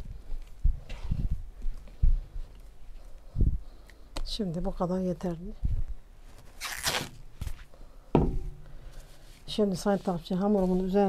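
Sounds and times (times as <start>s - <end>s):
plastic cling film crinkling: 6.3s - 7.4s.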